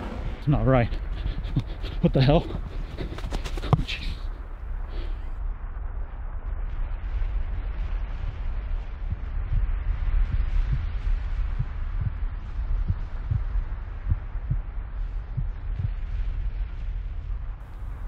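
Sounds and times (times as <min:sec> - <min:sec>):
deep rumble with windy hiss: 0:00.0 - 0:18.0
heartbeat-like low thumps: 0:00.0 - 0:18.0.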